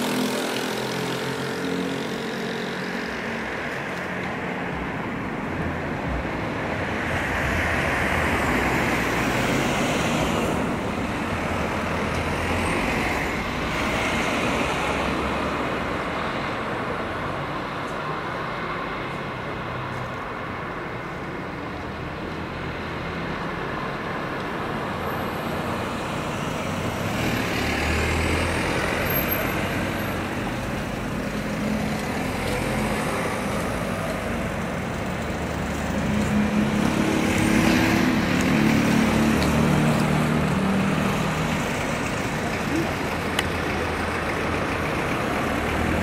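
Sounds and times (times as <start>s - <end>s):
vehicle engines running: 0.0s - 46.0s.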